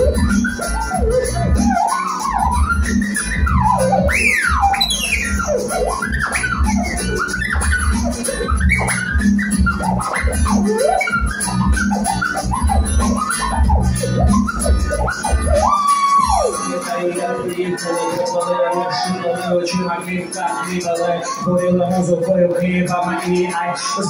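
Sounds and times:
whistle-like lead line: 0:00.0 - 0:19.2
live band music: 0:00.0 - 0:24.0.

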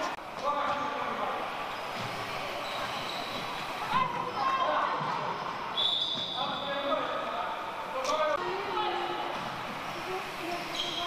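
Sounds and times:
short high squeak: 0:02.6 - 0:03.6.

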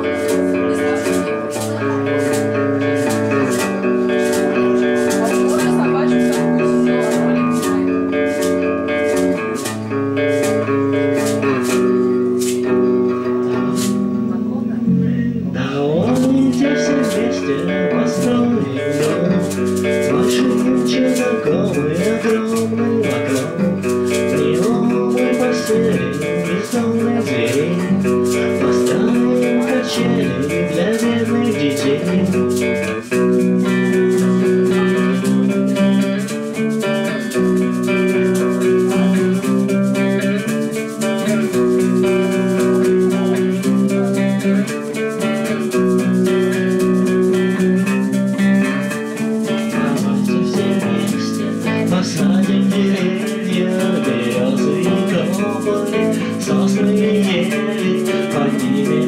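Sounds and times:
shaker rattling: 0:00.0 - 0:14.1, 0:16.0 - 0:59.0
acoustic guitar chords: 0:00.0 - 0:59.0
low bass notes: 0:00.0 - 0:59.0.

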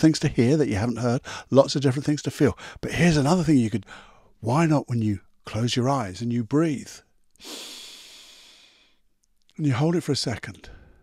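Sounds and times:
man breathing in: 0:01.2 - 0:01.5, 0:03.8 - 0:04.4, 0:07.4 - 0:09.0.

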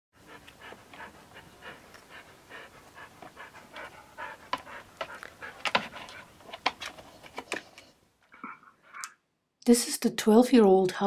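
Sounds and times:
dog panting rapidly: 0:00.2 - 0:06.8.

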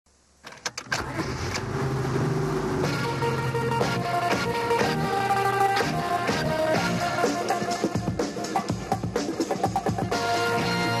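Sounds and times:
car engine starting and running: 0:00.4 - 0:07.3.

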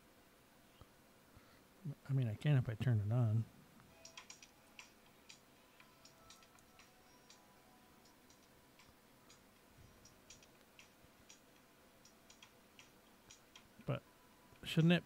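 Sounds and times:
computer keyboard and mouse clicks: 0:04.0 - 0:07.4, 0:10.0 - 0:13.7.

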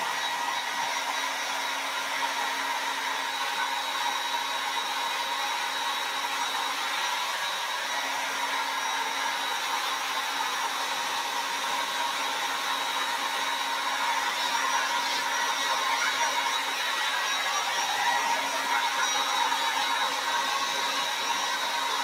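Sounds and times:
hair dryer blowing: 0:00.0 - 0:22.0.

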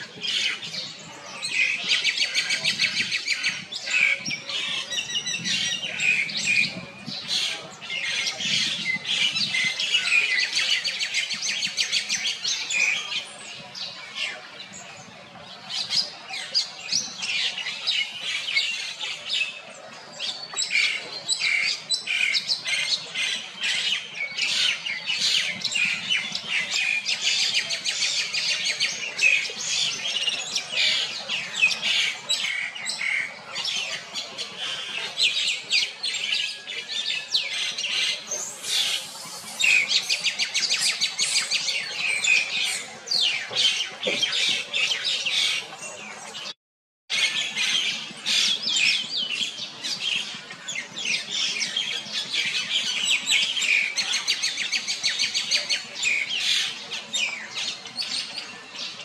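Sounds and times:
animal chirps and squawks: 0:37.9 - 0:41.8.

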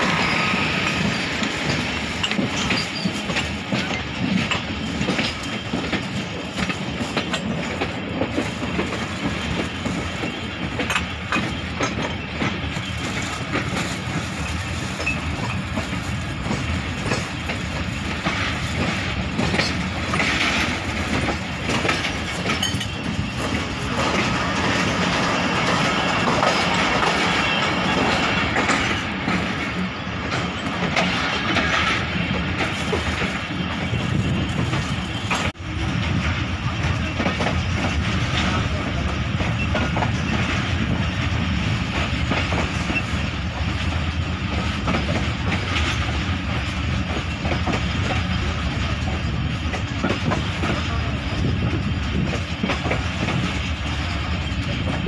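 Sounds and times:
train wheels rumbling on rails: 0:00.0 - 0:55.0.

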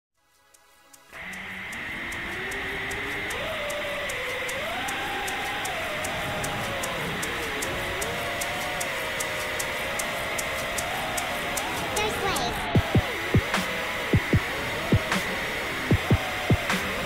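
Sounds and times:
music with ticking beat: 0:00.2 - 0:17.0
drone motors whining: 0:01.1 - 0:17.0
steady high tone: 0:11.9 - 0:12.7.

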